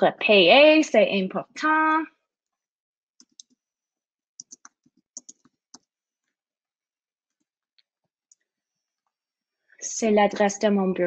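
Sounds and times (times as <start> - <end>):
faint keyboard keystroke clicks: 4.4 - 5.5.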